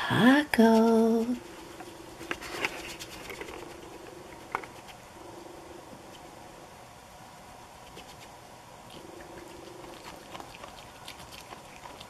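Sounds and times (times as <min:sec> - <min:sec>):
animal chewing crunchy taco shell: 0:02.2 - 0:05.1, 0:07.8 - 0:12.0.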